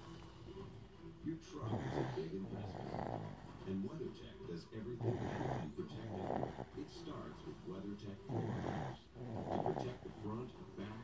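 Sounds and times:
baby snoring: 1.5s - 3.8s, 4.8s - 7.4s, 8.0s - 11.0s.

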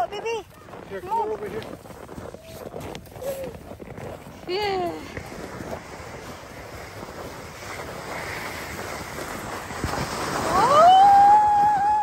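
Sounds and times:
sled scraping over snow: 0.0s - 12.0s
wind buffeting microphone: 0.0s - 12.0s.

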